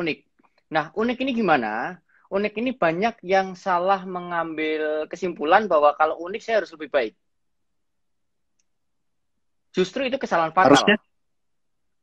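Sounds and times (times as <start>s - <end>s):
man speaking: 10.6s - 11.0s.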